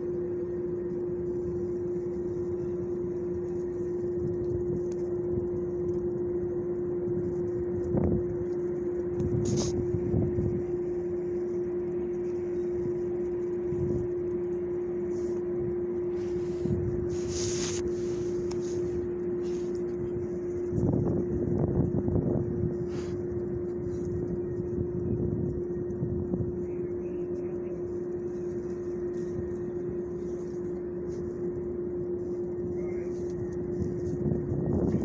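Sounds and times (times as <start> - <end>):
low rumble: 0.0 - 35.0
steady mechanical hum: 0.0 - 35.0.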